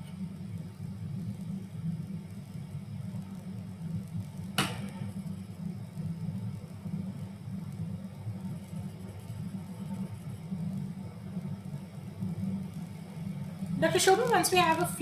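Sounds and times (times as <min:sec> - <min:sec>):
low background hum: 0:00.0 - 0:15.0.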